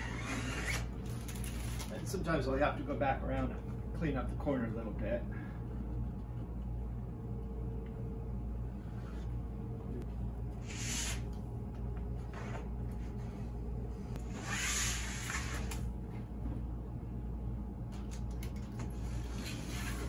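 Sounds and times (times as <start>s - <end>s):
steady low hum: 0.0s - 20.0s
utility knife scraping strokes: 10.6s - 11.2s, 14.3s - 15.7s.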